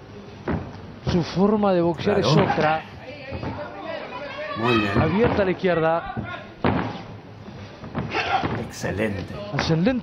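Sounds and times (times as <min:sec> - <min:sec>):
arena background noise: 0:00.0 - 0:10.0.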